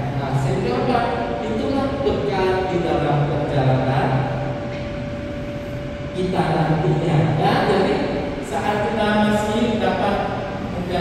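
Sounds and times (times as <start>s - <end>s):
steady background noise: 0.0s - 11.0s
thin steady hum: 0.0s - 11.0s.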